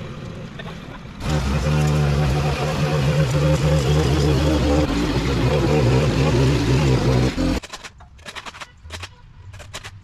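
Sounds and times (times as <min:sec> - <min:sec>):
string trimmer engine running: 0:01.2 - 0:07.6.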